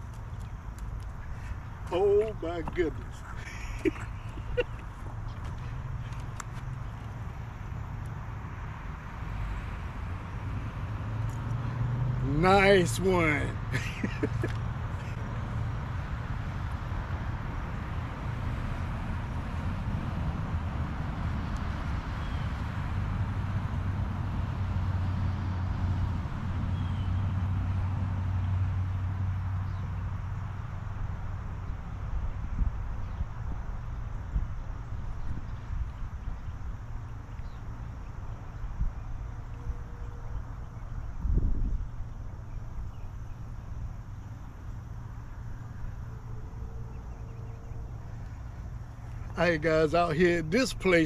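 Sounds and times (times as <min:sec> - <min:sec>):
low outdoor rumble: 0:00.0 - 0:51.0.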